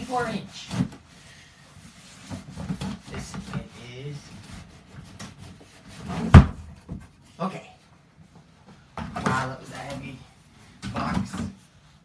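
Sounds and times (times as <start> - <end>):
cardboard rubbing: 1.8 - 7.4
box thudding on floor: 6.2 - 7.0.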